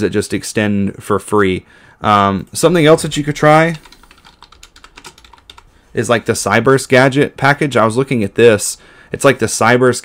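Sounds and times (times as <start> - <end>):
keyboard typing: 2.7 - 5.7.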